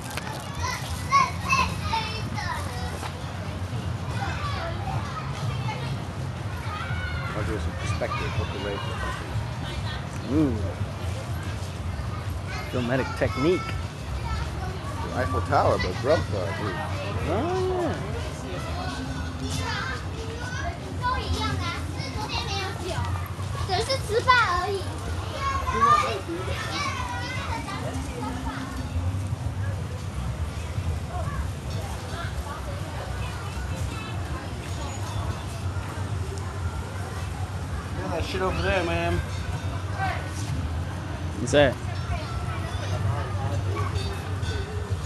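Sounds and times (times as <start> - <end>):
children chattering and calling out: 0.0 - 45.0
low crowd hum: 0.0 - 45.0
children squealing and shouting: 6.5 - 9.2.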